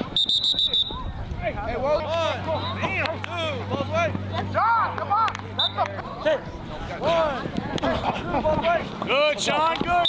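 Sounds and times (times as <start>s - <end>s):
sports whistle trilled blast: 0.0s - 1.0s.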